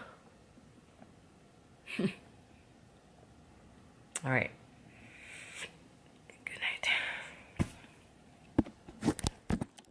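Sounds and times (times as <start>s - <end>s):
woman whispering: 6.3s - 7.4s.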